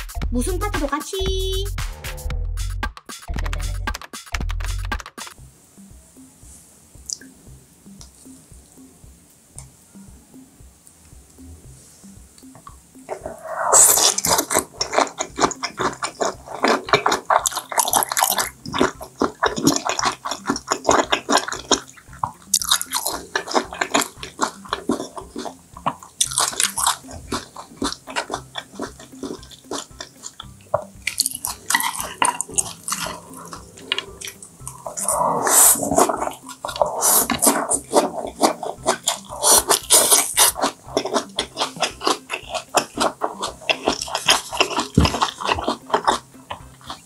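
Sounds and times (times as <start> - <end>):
wet chewing and mouth smacking: 7.1 - 7.3, 12.4 - 47.0.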